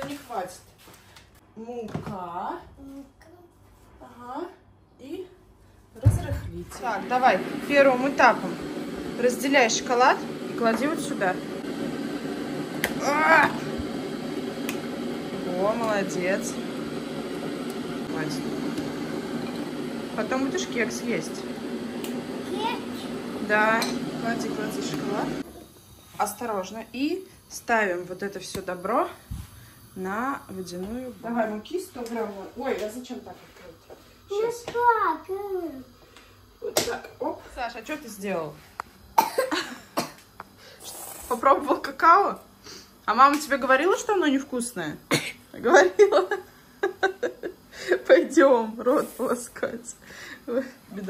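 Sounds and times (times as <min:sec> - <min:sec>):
child coughing: 0:39.2 - 0:40.2, 0:45.1 - 0:45.4.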